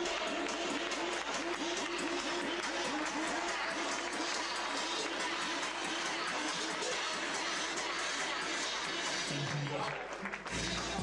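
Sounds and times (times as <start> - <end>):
crowd applause: 0.0 - 11.0
music playing: 0.0 - 11.0.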